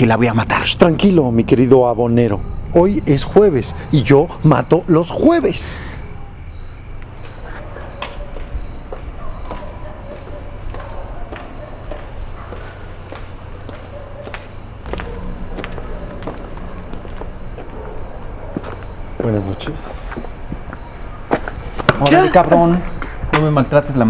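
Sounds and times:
crickets chirping: 0.0 - 24.0.

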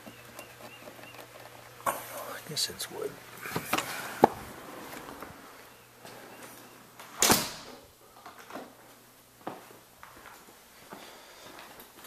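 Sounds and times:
footsteps on floor: 9.4 - 12.0.

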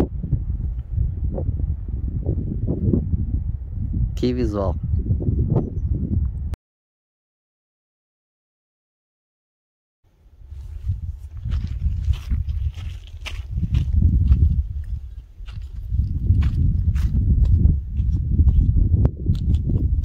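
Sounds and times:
wind buffeting microphone: 0.0 - 6.6, 10.3 - 20.0
footsteps on gravel: 10.5 - 20.0.

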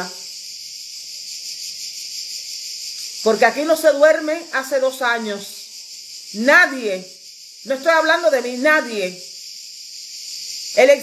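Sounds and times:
high-pitched hiss: 0.0 - 11.0.

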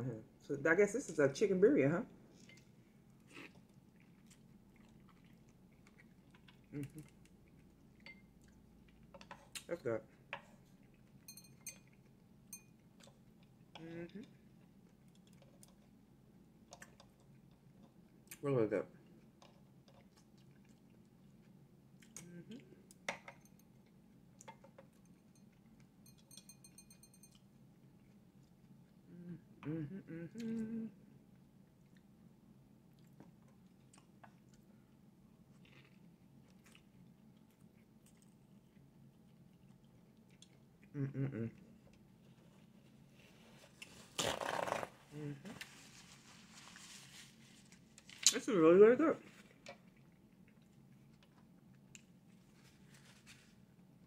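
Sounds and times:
chewing mouth sounds: 2.3 - 9.7, 19.1 - 22.7, 35.5 - 42.1.

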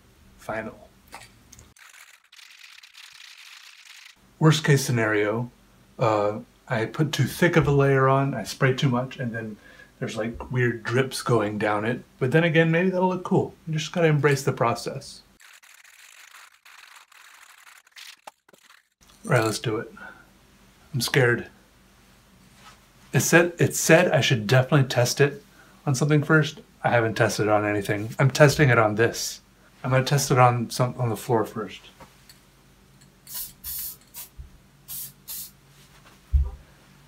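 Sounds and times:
aerosol can rattling: 1.7 - 4.2, 15.4 - 18.9
aerosol spray hiss: 33.3 - 35.6.

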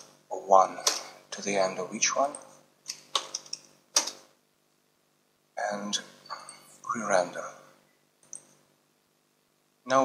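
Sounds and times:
keyboard and mouse clicks: 2.9 - 4.3, 8.2 - 8.6.

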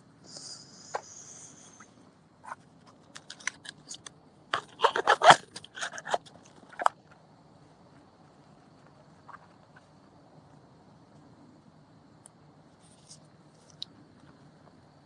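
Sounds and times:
sharp clicks and crackles: 2.5 - 7.2.

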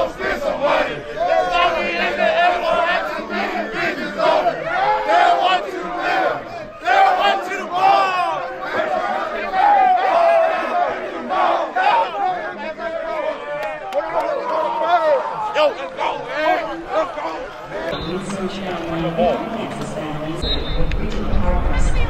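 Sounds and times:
players shouting and yelling: 0.0 - 22.0.

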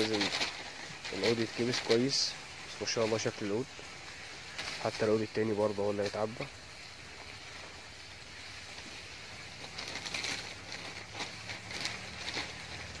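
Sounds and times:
rustling and scraping of soil: 0.0 - 13.0.

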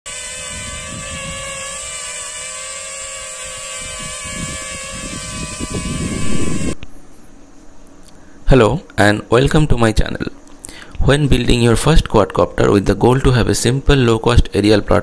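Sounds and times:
quadcopter motors whining: 0.0 - 6.8
wind rumble on microphone: 0.1 - 6.8.

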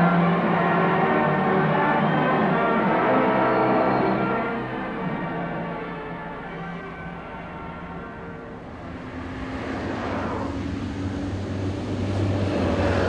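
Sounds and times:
bus engine and tyre noise: 0.0 - 13.0.

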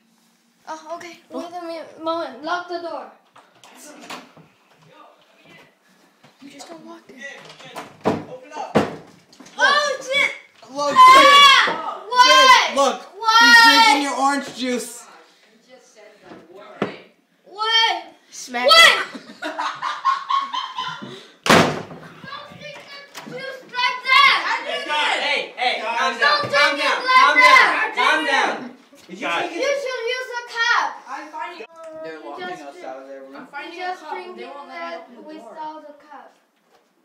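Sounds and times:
door banging: 21.5 - 22.1.

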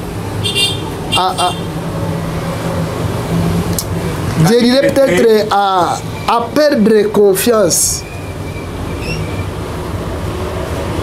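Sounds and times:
engine droning: 0.0 - 11.0
person speaking: 1.2 - 1.6, 4.2 - 8.0.

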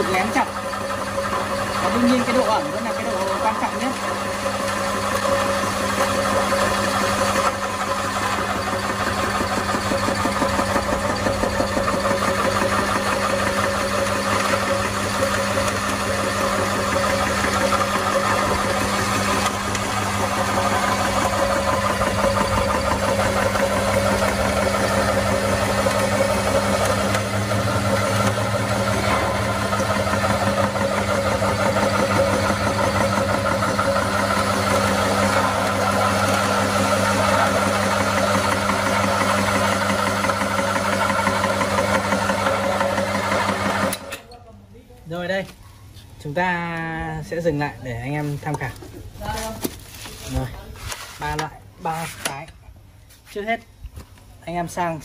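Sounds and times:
extruder motor humming: 0.0 - 44.3.

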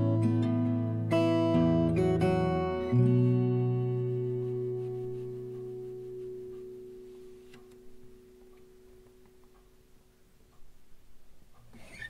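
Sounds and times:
acoustic guitar chord ringing: 0.0 - 10.0.

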